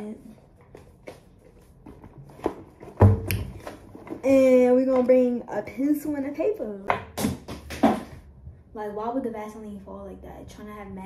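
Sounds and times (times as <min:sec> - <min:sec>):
notebook taps and rustling: 0:00.5 - 0:05.3.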